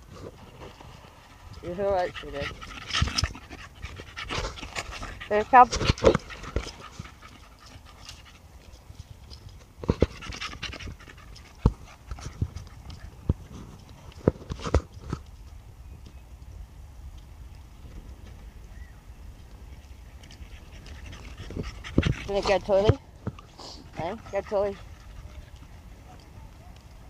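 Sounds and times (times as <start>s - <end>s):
dog panting: 0.9s - 8.8s, 9.8s - 13.6s, 20.2s - 27.0s.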